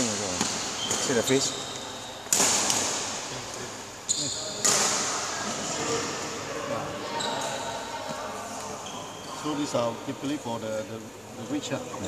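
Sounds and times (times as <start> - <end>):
rackets striking shuttlecock: 2.2 - 3.3, 4.6 - 5.2.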